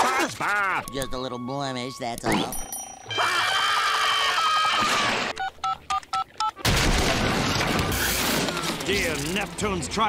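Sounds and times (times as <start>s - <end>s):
two-tone telephone keypad beeps: 0.8s - 3.1s, 5.4s - 6.6s.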